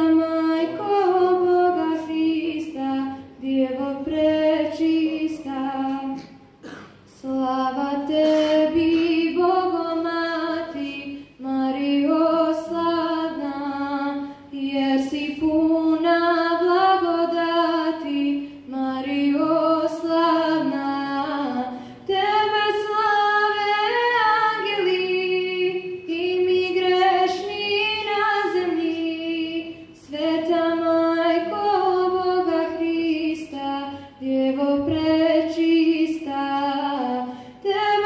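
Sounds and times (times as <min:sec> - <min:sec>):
girl singing a hymn: 0:00.0 - 0:38.0.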